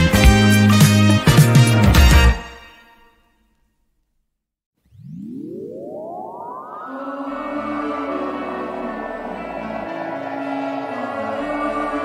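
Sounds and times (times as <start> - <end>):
rising synthesized tone: 4.8 - 12.0.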